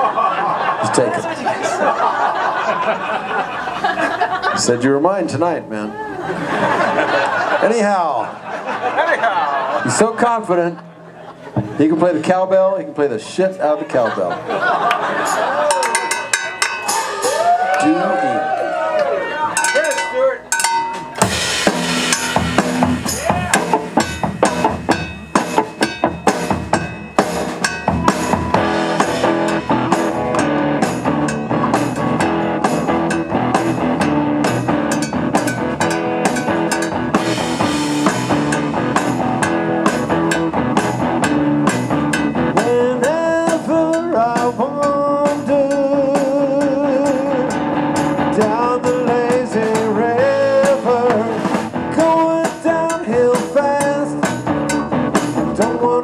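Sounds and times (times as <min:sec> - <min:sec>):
drum kit steady beat: 0:15.0 - 0:17.8, 0:19.6 - 0:56.0
electric guitar: 0:21.2 - 0:56.0.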